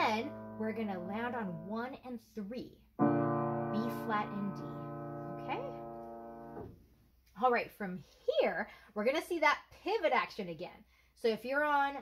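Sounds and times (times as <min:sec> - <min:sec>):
upright piano notes ringing: 0:00.0 - 0:02.0, 0:03.0 - 0:06.8.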